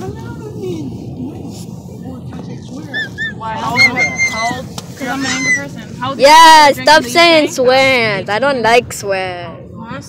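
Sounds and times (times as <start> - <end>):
high-pitched squeaking voice: 3.0 - 5.7.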